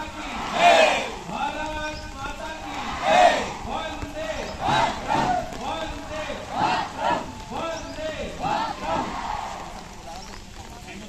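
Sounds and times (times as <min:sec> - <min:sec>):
group shouting slogan together: 0:00.1 - 0:01.4, 0:02.6 - 0:05.5, 0:06.1 - 0:09.7.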